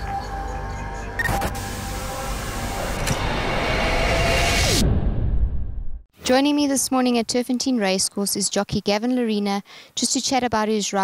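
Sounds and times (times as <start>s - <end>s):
rising musical swell: 0.0s - 5.4s
sharp hit with whoosh: 3.0s - 6.0s.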